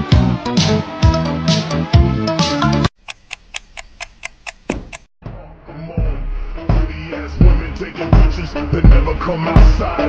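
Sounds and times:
even ticking: 3.0 - 5.1.

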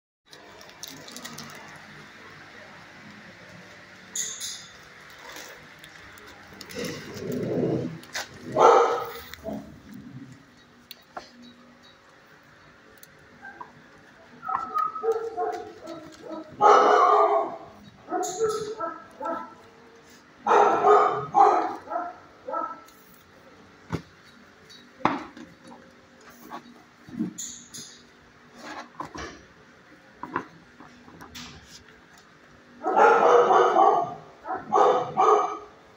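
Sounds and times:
dogs barking: 7.5 - 9.8, 14.4 - 19.7, 20.4 - 22.9, 32.8 - 35.8.

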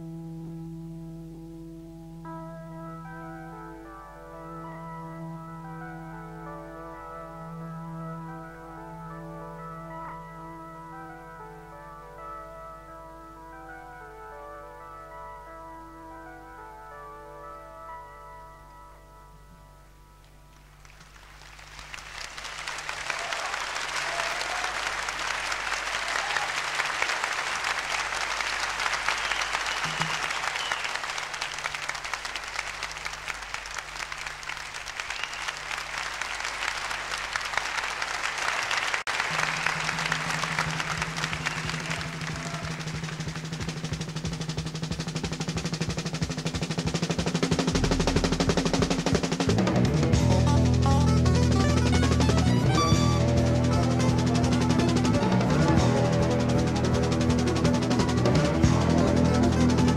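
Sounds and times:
keyboard chords: 0.0 - 20.8, 39.1 - 59.9
audience applauding: 20.5 - 50.2, 51.2 - 59.9
pulsing low rhythm: 40.0 - 59.9.

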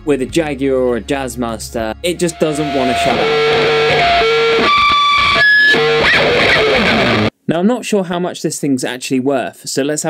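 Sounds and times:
distorted electric guitar playing: 1.9 - 7.3
electric guitar feedback: 2.0 - 7.3.

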